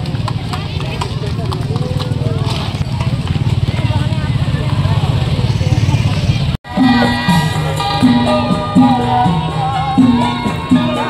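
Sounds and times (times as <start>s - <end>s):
crowd voices and shouts: 0.0s - 11.0s.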